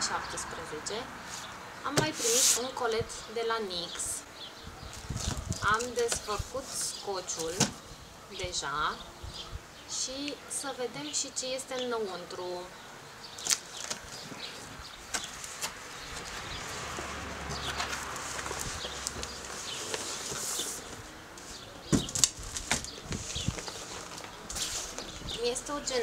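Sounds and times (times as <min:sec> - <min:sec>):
packaging rustling: 0:13.4 - 0:16.4, 0:17.8 - 0:21.1, 0:21.9 - 0:25.3
sharp knocks and bumps: 0:21.9 - 0:22.8.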